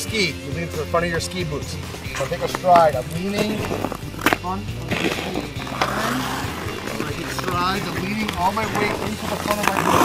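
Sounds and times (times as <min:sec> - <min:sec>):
ice skate blades scraping: 0:02.1 - 0:10.0.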